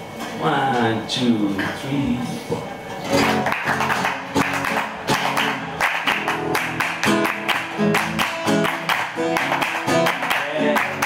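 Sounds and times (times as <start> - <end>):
acoustic guitar strumming: 3.0 - 11.0
audience clapping along: 3.1 - 11.0.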